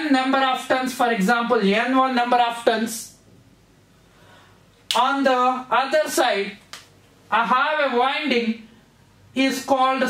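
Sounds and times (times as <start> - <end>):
man speaking: 4.9 - 6.6.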